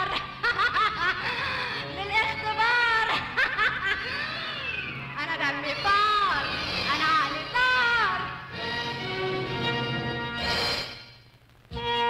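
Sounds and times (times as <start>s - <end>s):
woman laughing: 0.0s - 1.9s, 3.0s - 4.6s.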